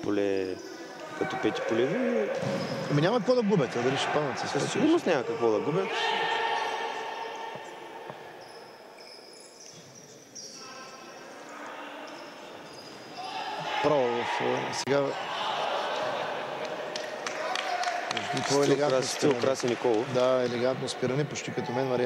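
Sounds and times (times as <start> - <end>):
players shouting: 0.9 - 8.3, 13.0 - 18.7.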